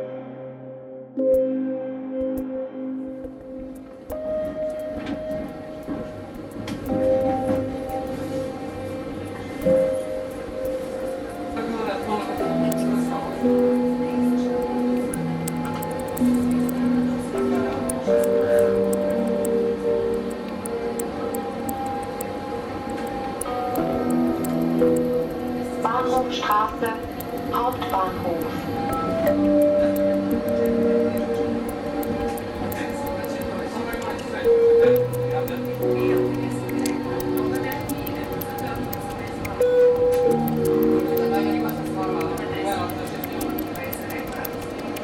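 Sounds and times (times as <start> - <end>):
soft held chords: 0.0 - 45.0.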